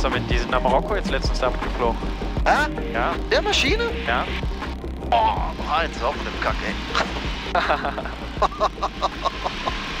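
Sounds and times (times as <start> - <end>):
light aircraft engine drone: 3.1 - 10.0
man laughing: 7.0 - 10.0.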